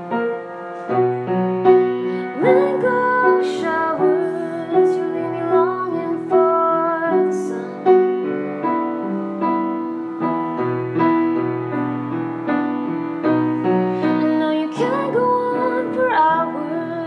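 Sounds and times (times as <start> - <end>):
slow piano chords: 0.0 - 17.0
woman singing: 2.2 - 8.1, 14.0 - 17.0.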